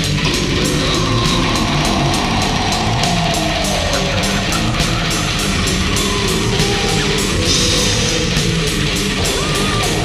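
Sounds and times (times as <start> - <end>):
distorted electric guitars: 0.0 - 10.0
fast drumbeat: 0.0 - 10.0.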